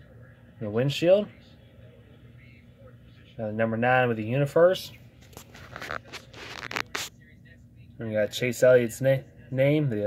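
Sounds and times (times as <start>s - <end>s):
small crackles and clicks: 5.3s - 7.1s.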